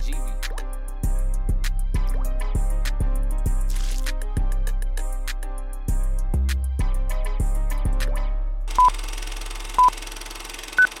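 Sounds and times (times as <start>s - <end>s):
countdown beeps: 8.8s - 9.0s, 9.8s - 10.0s.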